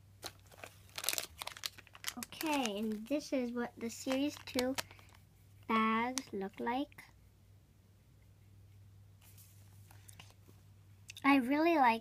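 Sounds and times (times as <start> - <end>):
foil bags crinkling: 0.2 - 5.2.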